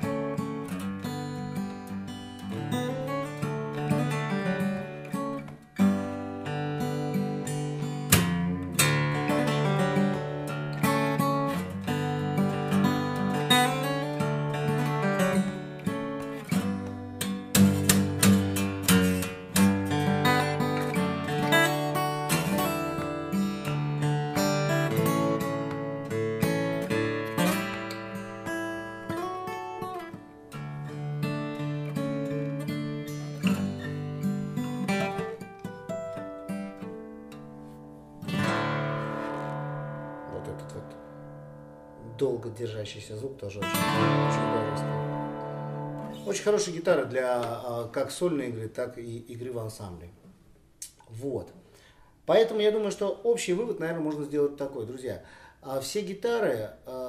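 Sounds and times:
fingerstyle acoustic guitar: 0:00.0 - 0:48.2.

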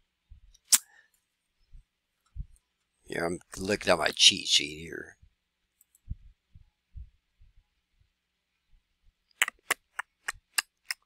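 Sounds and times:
faint low thumps: 0:01.7 - 0:02.6, 0:06.0 - 0:08.9.

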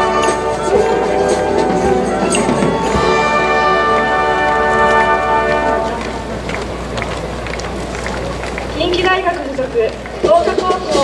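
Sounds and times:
stadium crowd noise: 0:00.0 - 0:11.0
voice over public address: 0:08.7 - 0:11.0.

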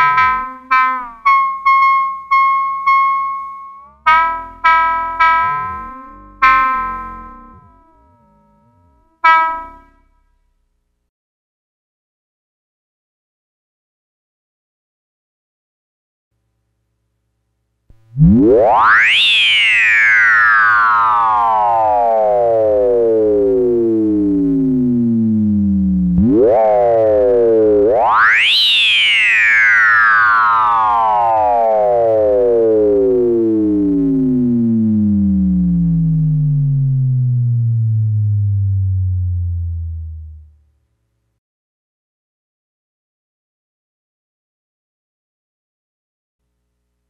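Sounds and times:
short synthesizer blip: 0:00.0 - 0:10.2.

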